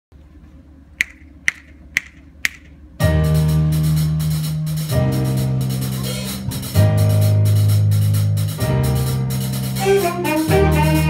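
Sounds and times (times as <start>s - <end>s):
sharp tempo clicks: 1.0s - 2.8s
jazz big band chord: 3.0s - 11.0s.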